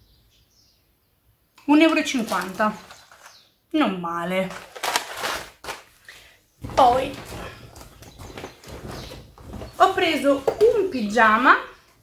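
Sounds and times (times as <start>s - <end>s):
packaging rustling: 2.2s - 3.4s, 4.4s - 6.0s, 6.6s - 10.0s.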